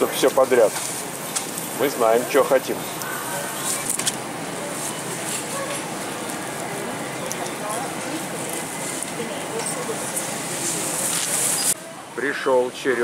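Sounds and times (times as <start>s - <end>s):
indistinct voices of shoppers: 0.0s - 13.0s
steady hum: 0.0s - 13.0s.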